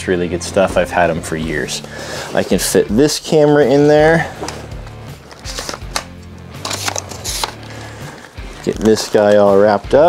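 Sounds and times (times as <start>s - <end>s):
soft background music: 0.0s - 10.0s
camera handling clicks and rustles: 5.3s - 7.6s.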